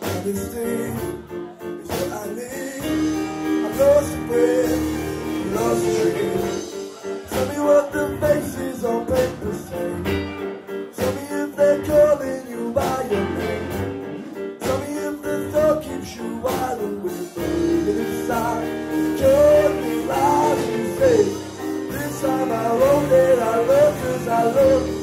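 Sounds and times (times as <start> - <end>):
drums: 0.0 - 25.0
electric guitar: 0.0 - 25.0
keyboard chords: 0.0 - 25.0
man singing lead vocal: 0.0 - 25.0.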